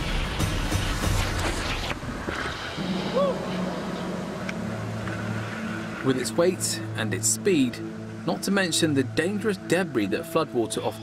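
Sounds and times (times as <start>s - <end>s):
dramatic music with low drone: 0.0s - 11.0s.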